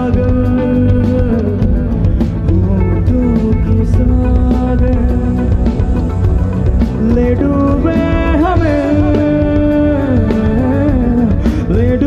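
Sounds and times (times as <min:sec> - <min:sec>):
band accompaniment: 0:00.0 - 0:12.0
low drums: 0:00.0 - 0:12.0
man singing into microphone: 0:00.0 - 0:12.0.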